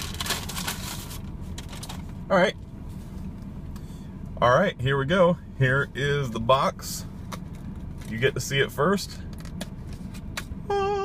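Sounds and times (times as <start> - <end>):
paper bag rustling: 0.0 - 2.0
steady low rumble: 0.0 - 11.0.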